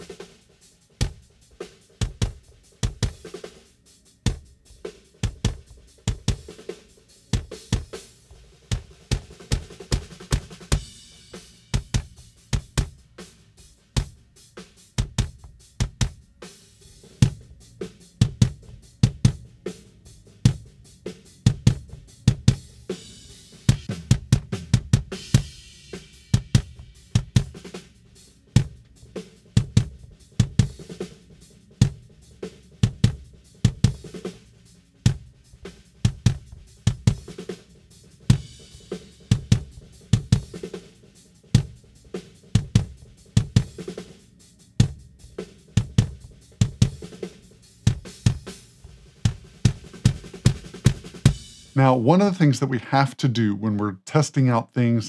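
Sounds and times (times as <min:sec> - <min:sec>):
drum kit playing a groove: 0:00.0 - 0:55.0.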